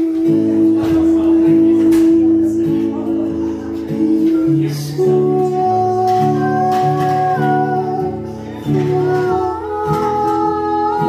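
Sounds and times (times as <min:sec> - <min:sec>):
acoustic guitar strumming: 0:00.0 - 0:11.0
person singing wordless notes: 0:00.0 - 0:11.0.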